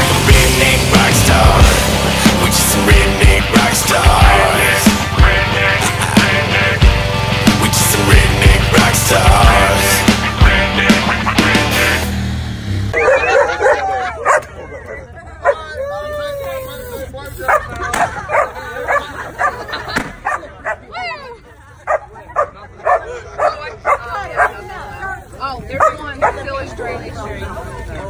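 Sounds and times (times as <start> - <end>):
dog yelping and whining: 13.0 - 16.3.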